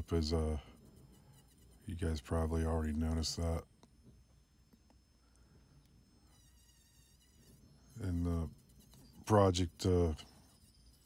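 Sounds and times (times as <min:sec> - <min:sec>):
rotary tool whine on wood: 0:00.0 - 0:11.0.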